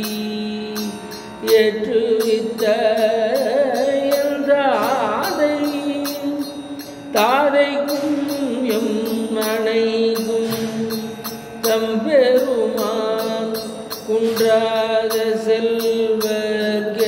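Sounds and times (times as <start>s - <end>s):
man singing into a microphone: 0.0s - 17.0s.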